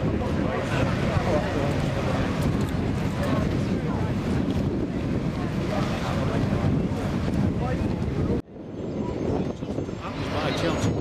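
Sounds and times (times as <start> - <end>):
crowd voices: 0.0 - 11.0
outdoor murmur of voices: 0.0 - 11.0
wind buffeting microphone: 0.0 - 11.0.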